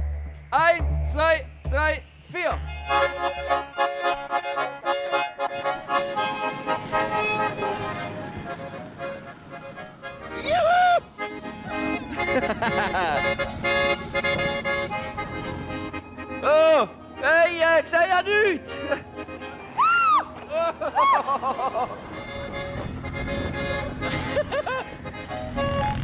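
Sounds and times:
accordions playing folk tune: 0:02.1 - 0:26.0
loud voice calling: 0:16.4 - 0:18.9.

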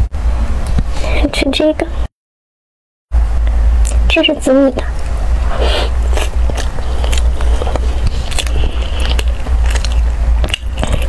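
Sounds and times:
mouth clicks and chewing: 0:04.8 - 0:11.0.

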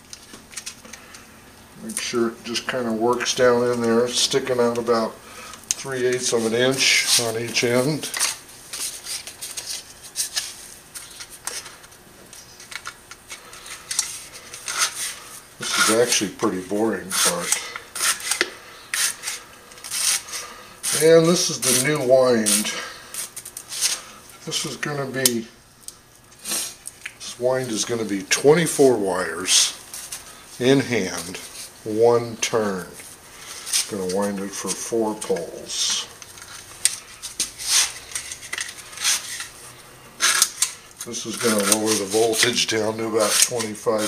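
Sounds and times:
paper scraping against steel slots: 0:05.8 - 0:25.4, 0:27.3 - 0:39.6, 0:40.2 - 0:44.0.

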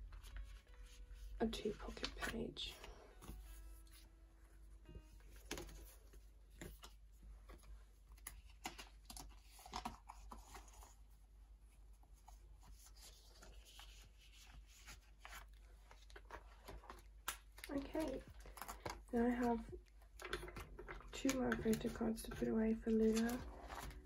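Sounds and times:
plastic sleeves rustling: 0:00.0 - 0:24.0.

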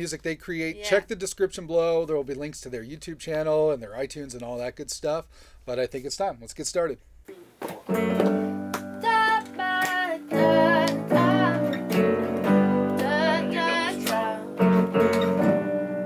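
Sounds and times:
keyboard piano chords: 0:07.9 - 0:16.0
strummed guitar: 0:07.9 - 0:16.0
person singing: 0:09.0 - 0:12.1, 0:12.9 - 0:14.7.

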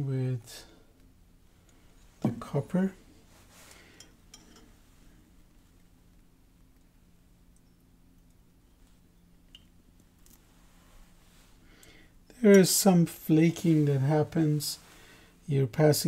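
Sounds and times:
faint steady hum: 0:00.0 - 0:16.0
small faint clicks: 0:07.5 - 0:08.6, 0:09.4 - 0:10.4.

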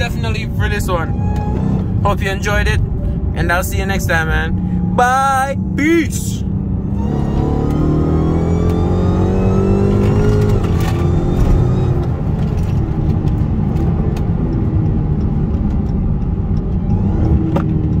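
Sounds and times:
car engine accelerating: 0:00.0 - 0:18.0.

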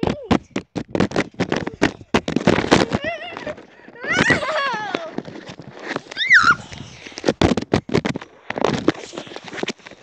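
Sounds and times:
child squealing: 0:06.1 - 0:06.7.

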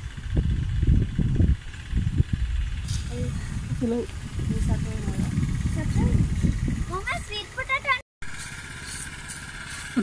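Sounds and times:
steady engine hum: 0:00.0 - 0:10.0.

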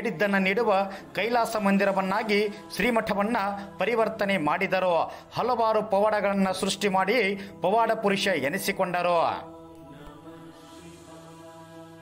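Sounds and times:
devotional music drone: 0:00.0 - 0:12.0.

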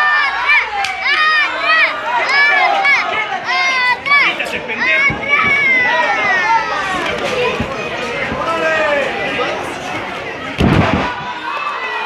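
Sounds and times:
children shouting and cheering: 0:00.0 - 0:09.6, 0:10.3 - 0:12.0.

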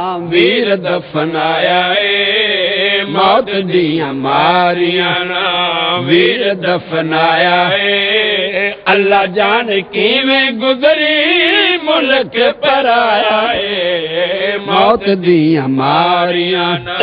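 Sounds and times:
man chanting through loudspeaker: 0:00.0 - 0:17.0.

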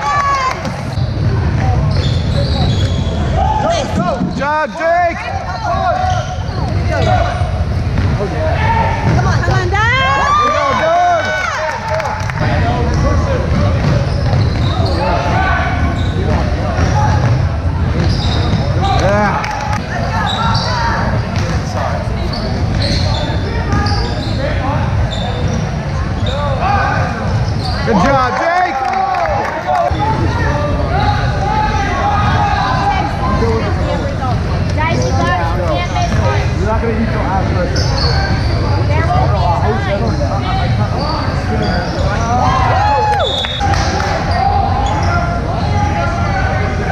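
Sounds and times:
sneakers squeaking: 0:00.0 - 0:11.6, 0:12.2 - 0:28.4, 0:29.8 - 0:36.6, 0:37.4 - 0:46.5
voices of spectators: 0:00.0 - 0:46.9.

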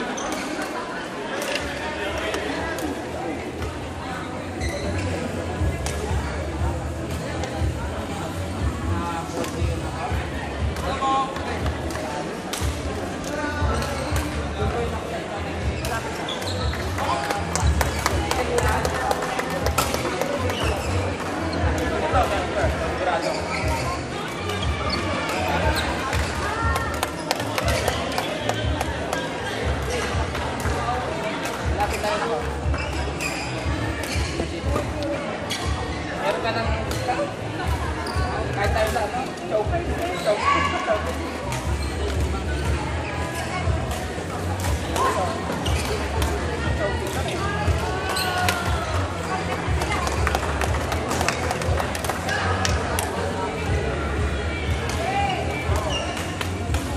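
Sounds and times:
babble of voices: 0:00.0 - 0:56.9
crowd chatter: 0:00.0 - 0:56.9
shoe squeaks on court floor: 0:04.6 - 0:05.2, 0:15.8 - 0:18.2, 0:19.8 - 0:21.7, 0:23.1 - 0:26.4, 0:31.8 - 0:34.9, 0:38.0 - 0:39.0, 0:41.5 - 0:42.3, 0:44.6 - 0:46.4, 0:55.2 - 0:56.9.

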